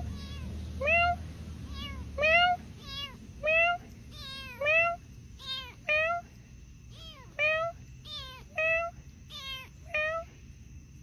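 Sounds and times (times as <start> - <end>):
kitten meowing: 0.0 - 6.3, 6.9 - 10.4
person imitating cat meows: 1.8 - 6.3.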